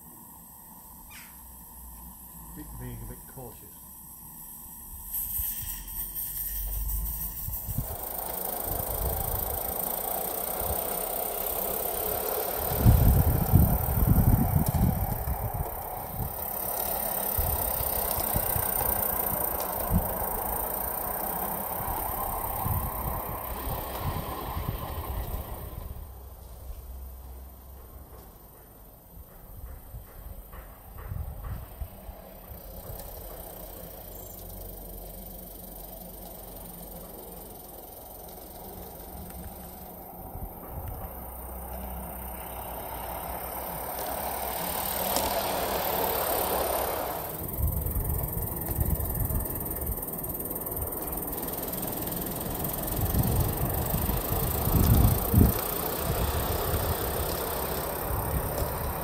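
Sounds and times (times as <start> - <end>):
steam hiss: 0.0 - 59.0
small wheels clattering on track: 5.2 - 59.0.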